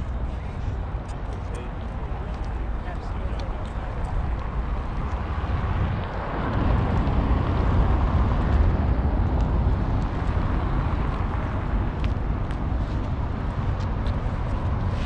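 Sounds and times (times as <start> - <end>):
city traffic rumble: 0.0 - 15.0.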